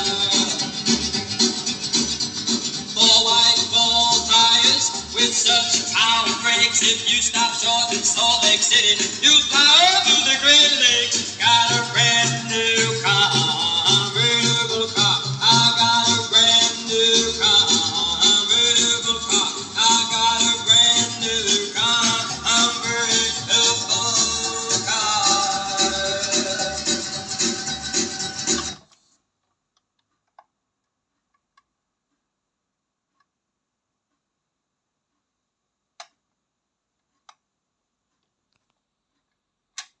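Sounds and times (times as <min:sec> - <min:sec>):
song from a vinyl record: 0:00.0 - 0:29.0.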